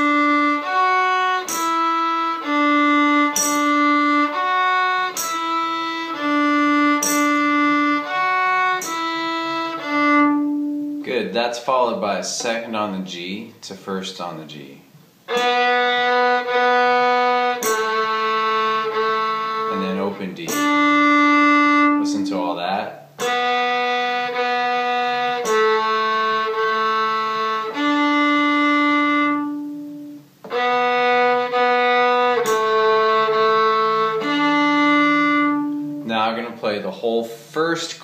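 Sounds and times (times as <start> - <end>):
fiddle long bowed notes: 0.0 - 12.6, 15.3 - 38.0.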